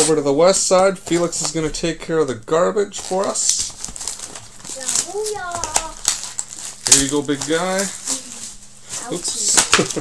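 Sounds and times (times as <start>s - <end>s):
card wrappers crinkling: 2.9s - 10.0s
child speaking: 4.7s - 6.0s, 8.0s - 9.6s.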